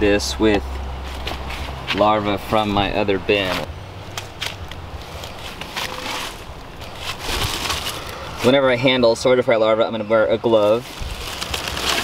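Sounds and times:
damp paper rustling and crunching: 5.0 - 8.9, 10.5 - 12.0.

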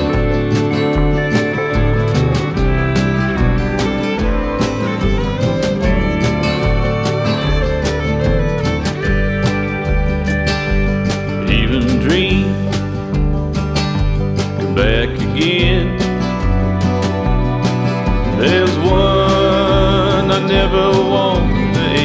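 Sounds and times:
country song instrumental: 0.0 - 22.0
sliding guitar lead line: 0.0 - 22.0.

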